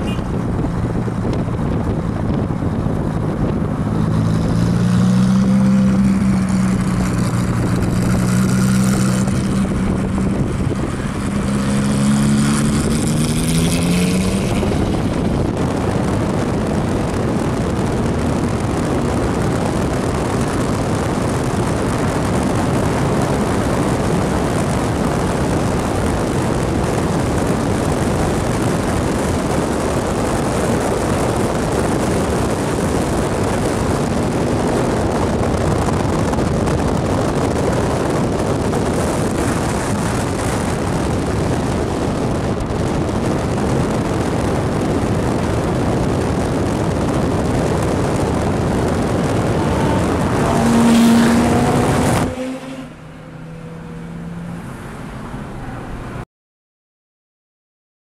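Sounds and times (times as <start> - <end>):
car engine revving: 0.0 - 55.8
wind and road rush: 0.0 - 56.3.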